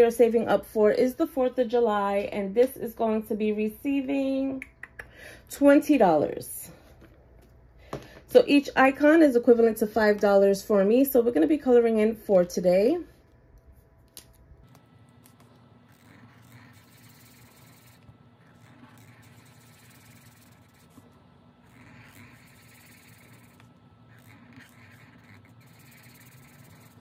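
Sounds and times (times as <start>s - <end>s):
marker scribbling on paper: 15.9s - 27.0s.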